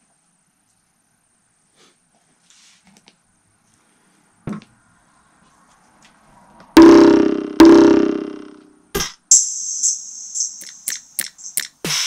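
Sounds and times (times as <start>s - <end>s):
electronic synth hits: 6.8s - 11.7s.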